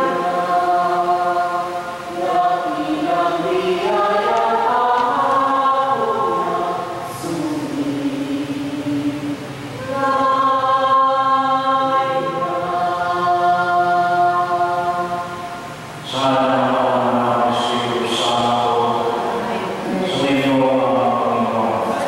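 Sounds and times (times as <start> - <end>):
choir singing slow chant: 0.0 - 22.0.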